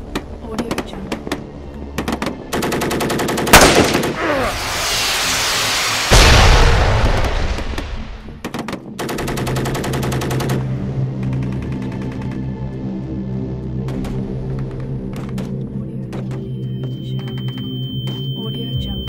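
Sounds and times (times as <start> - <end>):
background music: 0.0 - 5.4, 6.1 - 19.0
automatic rifle fire: 3.1 - 4.2
deep explosion with rumble: 3.6 - 8.3
loud explosion: 3.6 - 8.3
falling debris hiss: 3.8 - 8.2.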